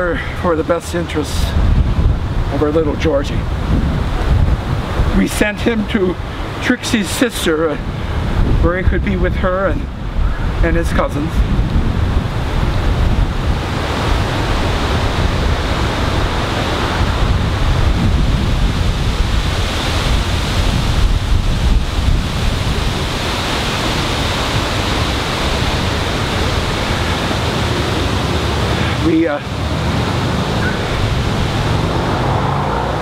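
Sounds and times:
wind blowing over microphone: 0.0s - 33.0s.

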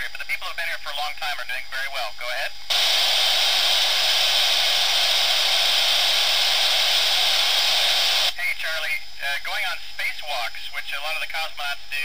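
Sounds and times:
radio static hiss: 0.0s - 12.0s.

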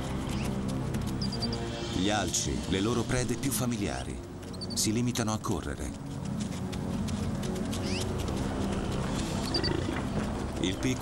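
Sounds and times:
animal chase sounds: 7.1s - 11.0s.

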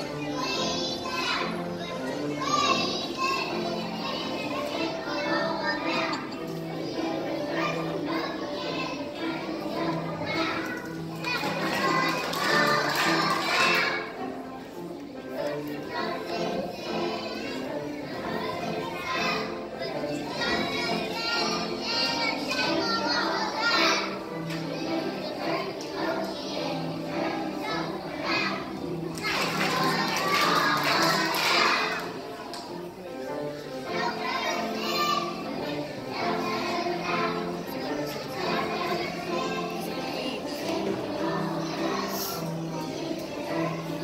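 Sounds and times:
music playing: 0.0s - 44.0s
young children's voices: 0.0s - 44.0s.

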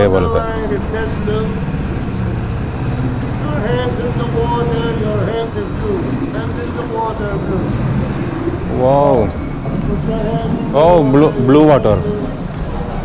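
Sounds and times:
boat engine running low: 0.0s - 13.0s
people's voices: 0.0s - 13.0s.

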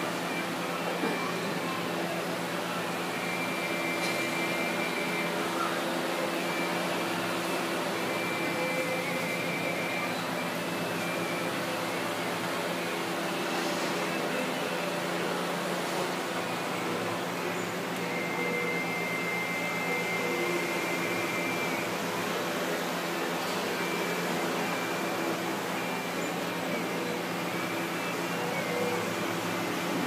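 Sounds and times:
fan-like hum and hiss: 0.0s - 30.0s.

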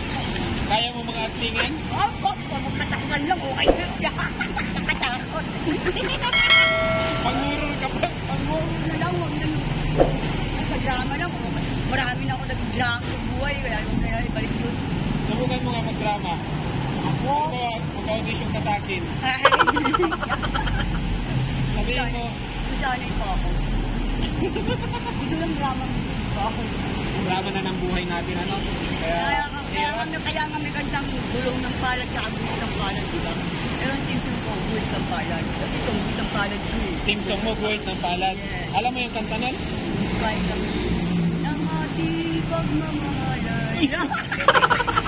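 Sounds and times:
road traffic rumble: 0.0s - 45.0s.

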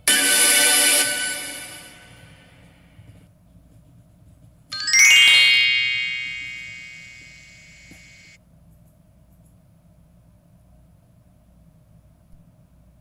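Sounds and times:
bright bell-like chime: 4.8s - 8.4s.

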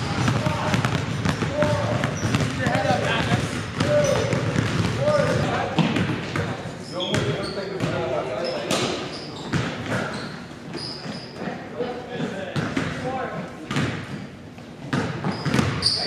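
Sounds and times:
basketballs bouncing on hardwood: 0.0s - 10.2s, 12.2s - 15.9s
voices echoing: 0.0s - 16.0s
shoe squeaks: 2.0s - 2.5s, 3.9s - 4.4s, 6.8s - 11.6s, 15.1s - 16.0s.

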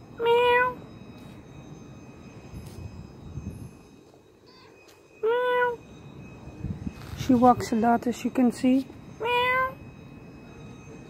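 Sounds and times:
cat meowing: 0.2s - 0.8s, 5.2s - 5.8s, 9.2s - 9.8s.

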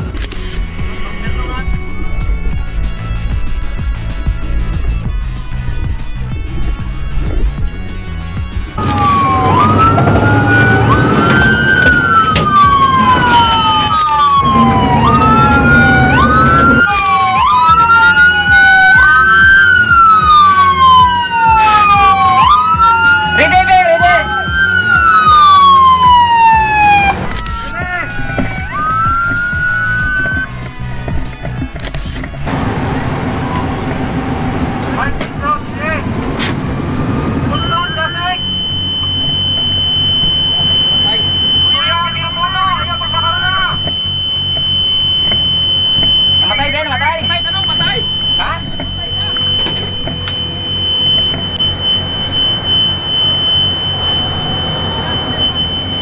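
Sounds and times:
truck engine running: 0.0s - 56.0s
fire truck siren wailing: 8.4s - 56.0s
steady high beep: 37.5s - 56.0s.

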